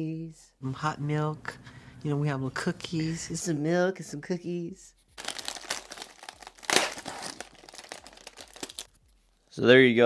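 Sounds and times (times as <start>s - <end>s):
plastic wrapper ripping: 5.2s - 9.0s
plastic wrapper crinkling: 5.2s - 9.1s.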